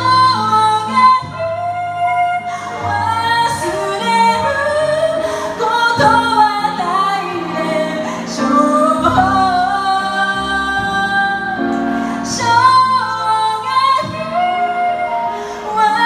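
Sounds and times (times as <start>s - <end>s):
digital piano chords: 0.0s - 16.0s
woman singing into microphone: 0.0s - 16.0s.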